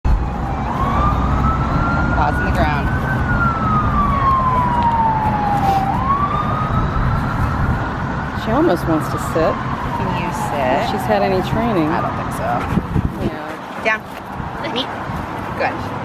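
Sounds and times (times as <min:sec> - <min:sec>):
siren wailing: 0:00.1 - 0:13.2.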